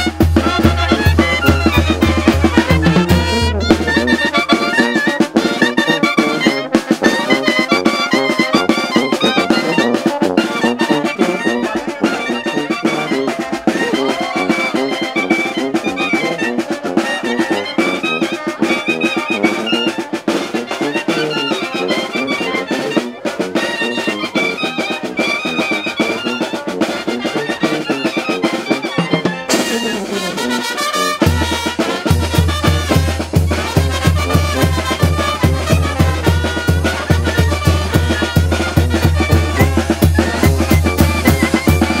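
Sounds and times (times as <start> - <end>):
bass drum and cymbal beat: 0.0 - 3.6
clarinets and brass melody: 0.0 - 42.0.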